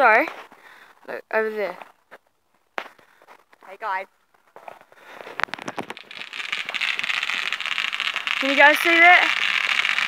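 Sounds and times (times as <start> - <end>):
firework crack: 5.0 - 10.0
crackle of small pops: 5.2 - 10.0
firework hiss: 5.2 - 10.0.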